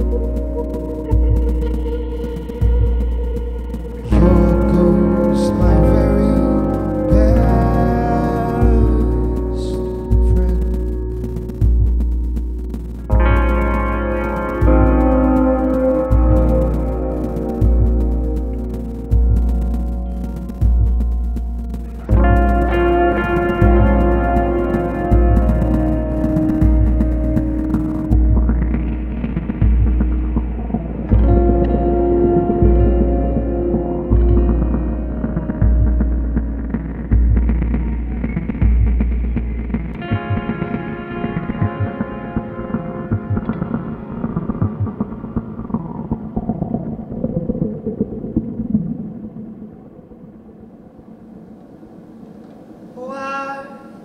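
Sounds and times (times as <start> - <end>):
throbbing synth bass pulse: 0.0 - 49.6
sustained synth drone: 0.0 - 54.0.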